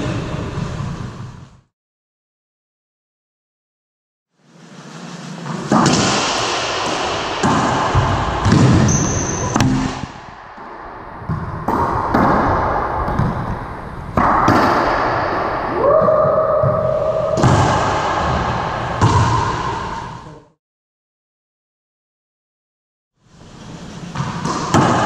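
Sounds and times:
racquet strikes: 5.4s - 15.7s, 16.6s - 20.1s, 24.0s - 25.0s
high squeak: 8.8s - 9.6s.

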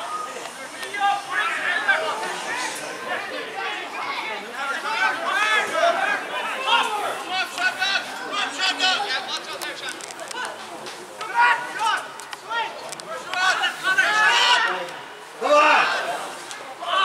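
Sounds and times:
men shouting and calling out: 0.0s - 17.0s.

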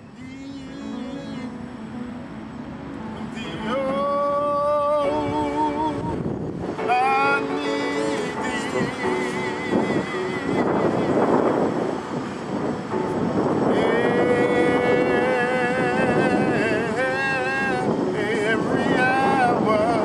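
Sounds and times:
man singing gospel song: 0.0s - 1.8s, 3.3s - 12.0s, 13.4s - 20.0s
electronic keyboard: 0.0s - 20.0s
rushing noise: 0.0s - 20.0s.

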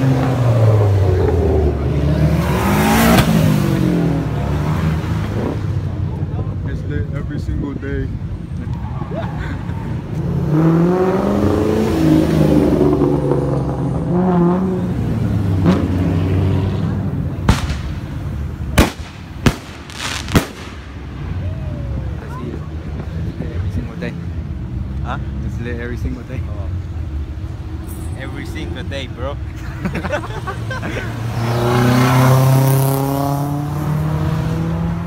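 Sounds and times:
car engines revving: 0.0s - 35.0s
crowd voices: 14.6s - 32.6s
sharp bangs: 17.4s - 21.3s.

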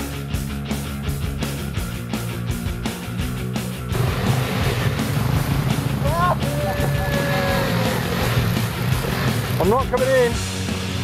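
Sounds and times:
music: 0.0s - 11.0s
dirt bike engine running: 3.0s - 10.6s
water splashing: 3.9s - 9.8s
person shouting: 6.0s - 8.1s.

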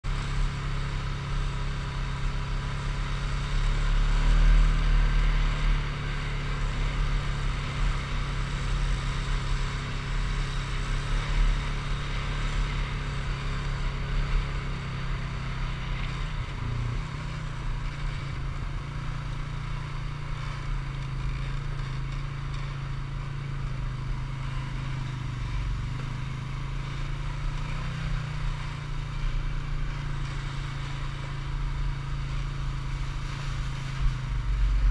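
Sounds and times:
atv engine running: 0.0s - 34.9s.

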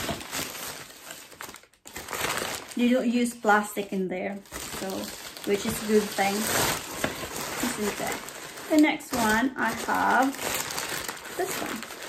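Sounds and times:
paper bag rustling: 0.0s - 3.1s, 4.4s - 12.0s.

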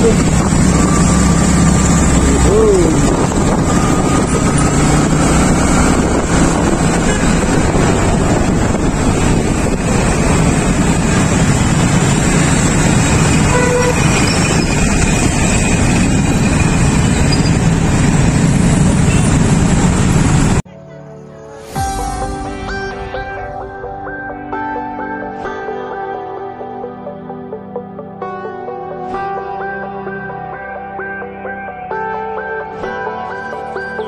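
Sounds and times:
motorcycle engine: 0.0s - 20.6s
road noise: 0.0s - 20.6s
vehicle horn toots: 6.8s - 8.0s, 13.3s - 14.9s, 19.0s - 19.6s.

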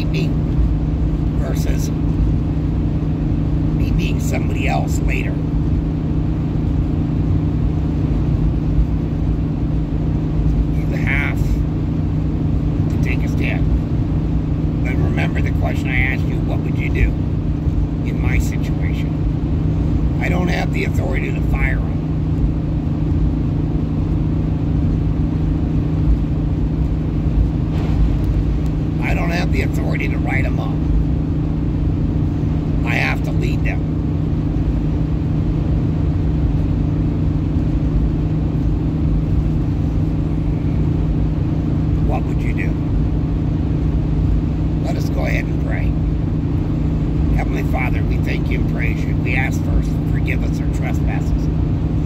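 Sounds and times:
car engine drone: 0.0s - 52.0s.

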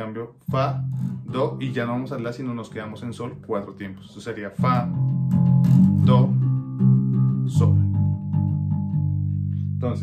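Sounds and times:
electric bass low note: 0.5s - 10.0s.

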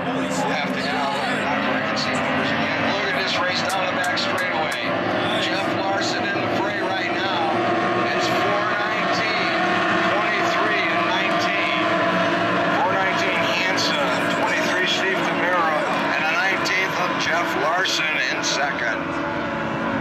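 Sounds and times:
people's voices: 0.0s - 20.0s
racing boat outboard engines: 0.0s - 20.0s.

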